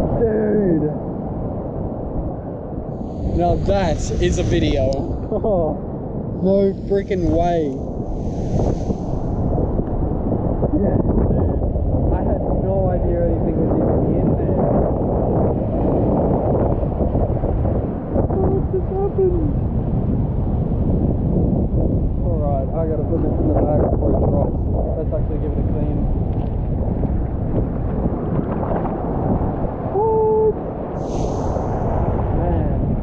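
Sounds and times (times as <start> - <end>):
wind buffeting microphone: 0.0 - 33.0
surf rushing over rocks: 3.0 - 5.3.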